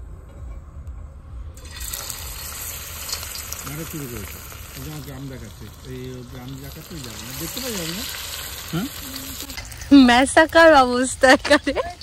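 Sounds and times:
oil hissing in hot pan: 0:01.6 - 0:12.0.

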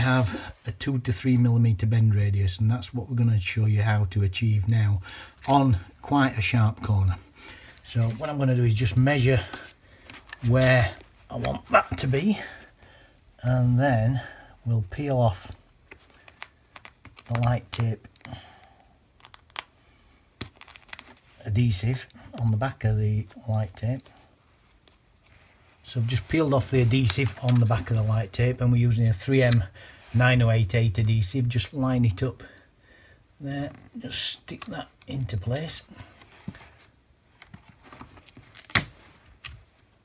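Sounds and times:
light tape rustling: 0:06.6 - 0:13.7, 0:15.3 - 0:18.4, 0:19.1 - 0:31.6, 0:33.6 - 0:40.0.

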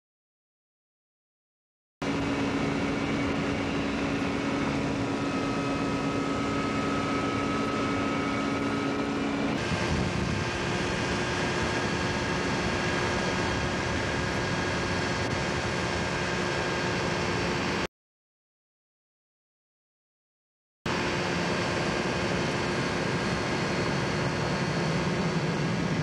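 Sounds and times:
ultralight aircraft engine humming: 0:02.0 - 0:17.9, 0:20.9 - 0:26.0
rushing air: 0:02.2 - 0:17.9.

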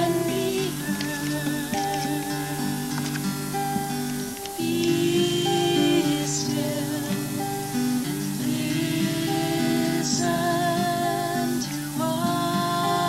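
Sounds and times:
soft instrumental accompaniment: 0:00.0 - 0:13.0
voices singing long notes: 0:00.0 - 0:13.0.

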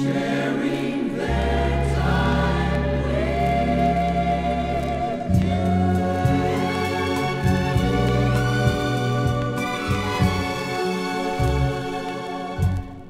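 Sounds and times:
choir singing held notes: 0:00.0 - 0:13.0
orchestral backing: 0:00.0 - 0:13.0.

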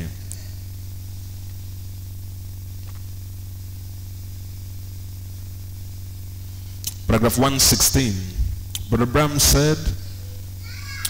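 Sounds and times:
low electrical hum: 0:00.0 - 0:11.0
sound system hiss: 0:00.0 - 0:11.0.

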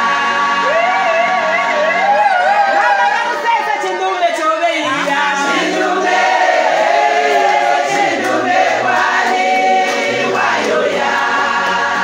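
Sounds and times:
women singing together: 0:00.0 - 0:03.5, 0:04.8 - 0:12.0.

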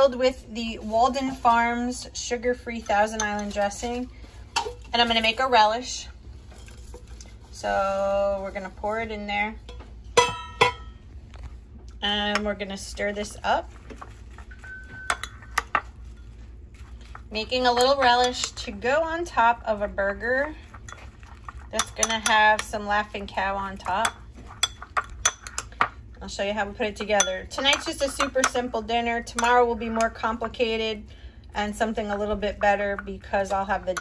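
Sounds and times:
ringing clinks on ceramic bowl: 0:14.6 - 0:15.7
metal spoon clinking on ceramic bowl: 0:14.6 - 0:15.9, 0:21.8 - 0:22.7, 0:24.0 - 0:25.7, 0:27.1 - 0:28.6, 0:29.3 - 0:29.6.

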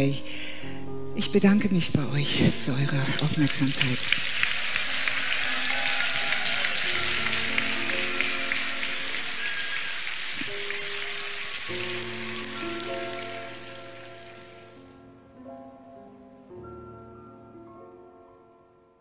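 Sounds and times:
soft instrumental music: 0:00.0 - 0:19.0
audience applause: 0:03.0 - 0:14.8.

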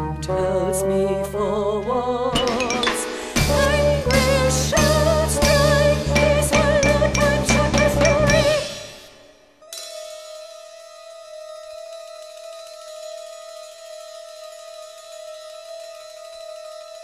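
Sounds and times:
experimental rock music: 0:02.2 - 0:13.8.

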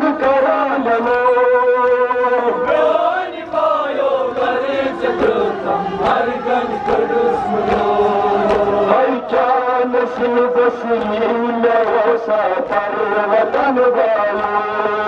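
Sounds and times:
men chanting a lament through microphone: 0:00.0 - 0:15.0.

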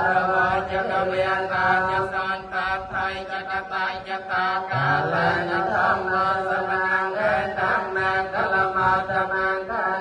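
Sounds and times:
chanting voices: 0:00.0 - 0:10.0.

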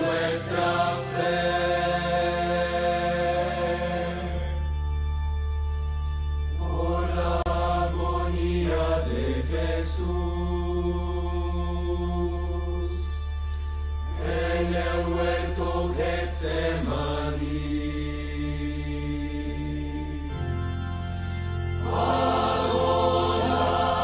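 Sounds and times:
choir singing a sacred chant: 0:00.0 - 0:04.7, 0:06.6 - 0:13.2, 0:14.1 - 0:20.5, 0:21.7 - 0:24.0.

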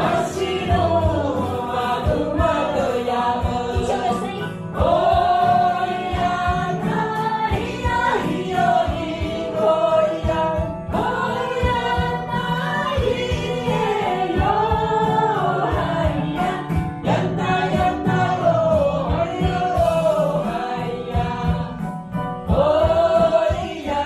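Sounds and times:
woman singing into microphone: 0:00.0 - 0:21.9
mixed choir singing: 0:00.0 - 0:24.0.

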